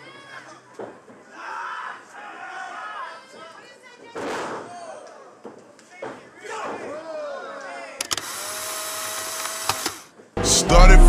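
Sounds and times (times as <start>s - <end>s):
long flat held voice tone: 10.4s - 11.0s.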